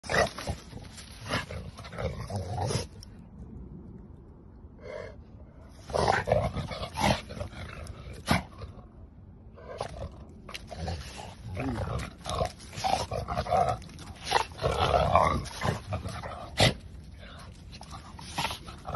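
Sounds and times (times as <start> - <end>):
dogs growling: 4.8 - 8.9, 9.5 - 18.9.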